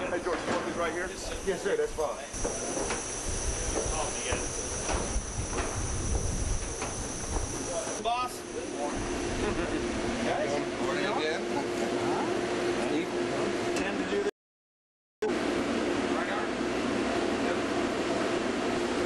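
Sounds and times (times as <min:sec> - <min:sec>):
steady hum: 0:00.9 - 0:14.3
steady high hiss: 0:01.0 - 0:09.7
wind rumble on microphone: 0:03.2 - 0:07.7.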